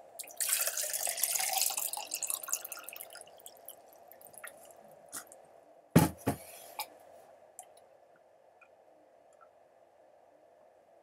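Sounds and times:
water pouring into a glass: 0.2s - 4.7s
faint water drips: 0.2s - 5.4s.

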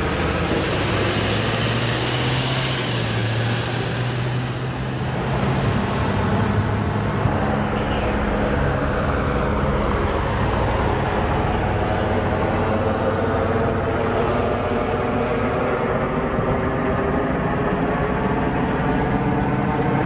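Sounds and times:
ambulance engine passing: 0.0s - 20.0s
emergency vehicles idling: 0.0s - 20.0s.

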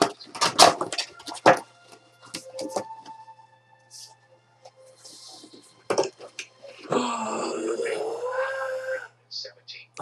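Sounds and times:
sustained voice-like call: 6.8s - 9.2s.

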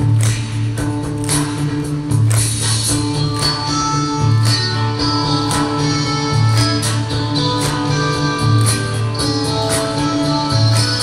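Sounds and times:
live rock band music: 0.0s - 11.0s.

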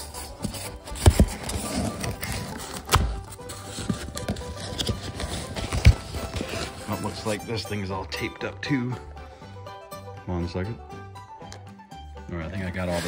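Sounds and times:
cardboard box and styrofoam handled: 0.0s - 7.4s, 12.6s - 13.0s
background music: 0.0s - 13.0s.

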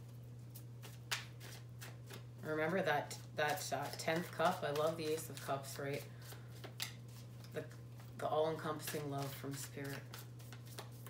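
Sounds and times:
low steady hum: 0.0s - 11.0s
cards shuffled by hand: 0.4s - 2.3s, 3.1s - 11.0s.

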